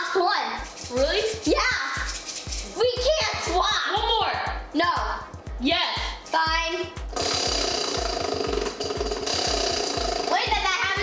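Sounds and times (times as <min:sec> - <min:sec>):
background music with beat: 0:00.6 - 0:11.0
prize wheel ticking: 0:07.0 - 0:11.0.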